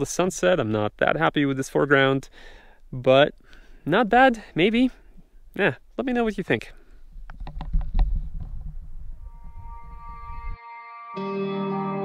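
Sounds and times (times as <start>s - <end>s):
wind buffeting microphone: 7.2s - 10.5s
ambient music: 9.2s - 12.0s.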